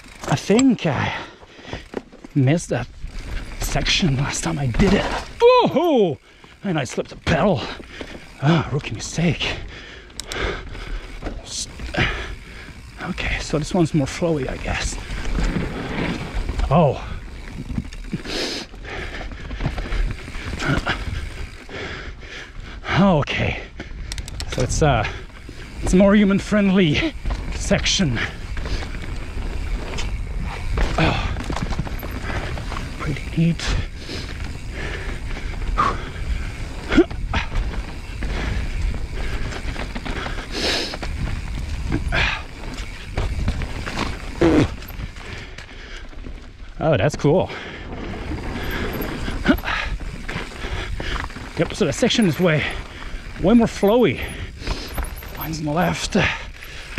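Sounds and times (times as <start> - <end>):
bike knocks and rattles: 0.0 - 9.4, 10.1 - 18.3, 18.9 - 21.7, 24.1 - 46.4, 47.8 - 56.9
bike tyres rolling over dirt: 0.0 - 56.9.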